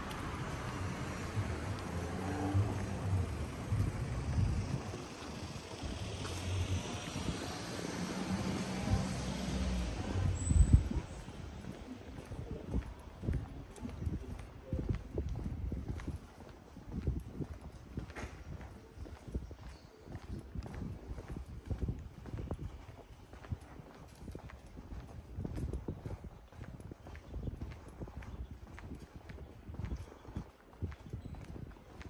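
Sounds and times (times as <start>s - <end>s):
footsteps on asphalt: 0.0s - 32.0s.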